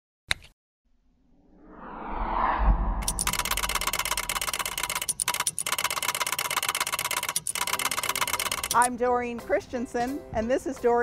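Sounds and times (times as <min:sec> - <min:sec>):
whoosh: 0:01.1 - 0:04.9
low boom: 0:01.2 - 0:04.3
mechanical ticking of rolling counter: 0:03.0 - 0:08.9.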